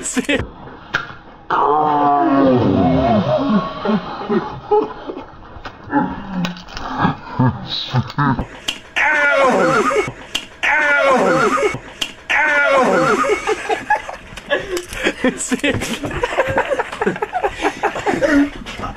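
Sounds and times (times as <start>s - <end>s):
person crying out loudly: 9.0s - 13.6s.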